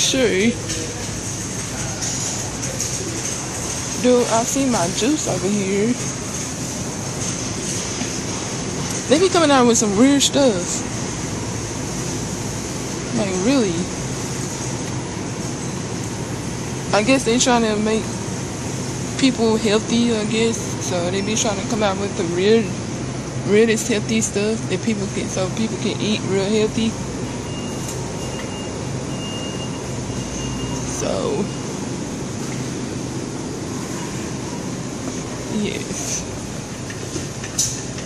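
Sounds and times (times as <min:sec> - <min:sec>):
supermarket background din: 0:00.0 - 0:18.5, 0:19.1 - 0:22.8.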